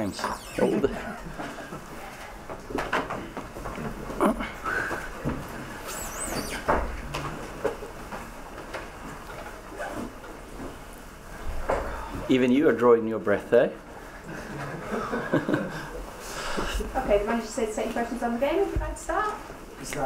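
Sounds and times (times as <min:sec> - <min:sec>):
high wavering squeak: 0:00.1 - 0:01.0, 0:05.8 - 0:06.7.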